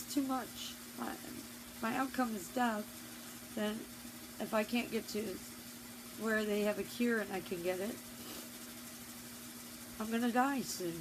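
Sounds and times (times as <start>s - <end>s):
faint hiss: 0.0s - 11.0s
low steady hum: 0.0s - 11.0s.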